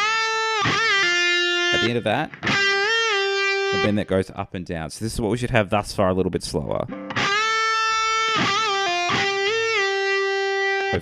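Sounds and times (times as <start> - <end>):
electric guitar lead with bends: 0.0 - 4.1, 6.9 - 11.0.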